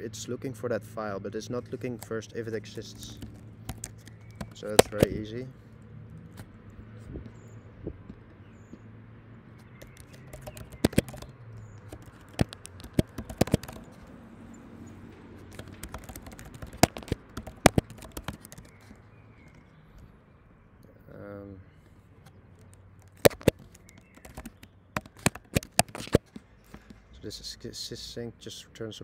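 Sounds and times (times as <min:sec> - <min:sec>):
keyboard keystroke clicks: 0:03.1 - 0:05.2, 0:09.8 - 0:14.0, 0:15.5 - 0:18.9, 0:22.6 - 0:26.2.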